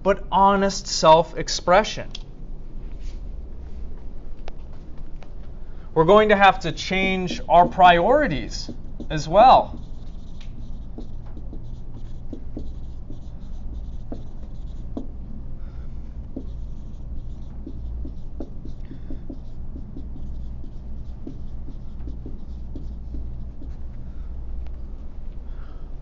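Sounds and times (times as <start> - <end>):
low room hum: 0.0 - 26.0
pen tapping and scratching: 7.0 - 15.2, 16.2 - 23.8.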